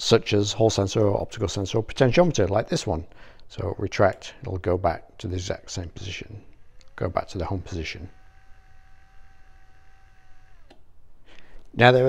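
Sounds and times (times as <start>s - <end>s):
small electric motor whining: 5.6s - 11.4s
actuator click: 6.5s - 8.4s, 10.0s - 10.9s.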